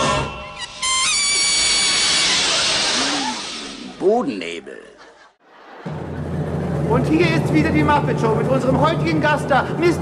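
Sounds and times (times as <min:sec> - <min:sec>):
sung theme tune: 0:00.0 - 0:02.6
loud hiss: 0:00.6 - 0:04.1.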